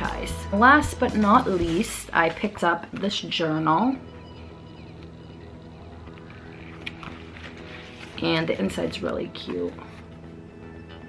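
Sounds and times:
soft low background music: 0.0s - 11.0s
paper journal clicks: 6.1s - 8.2s.

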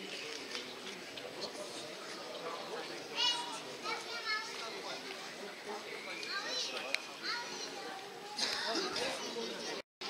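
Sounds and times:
children calling and talking: 0.0s - 9.8s
outdoor hubbub: 0.0s - 9.9s.

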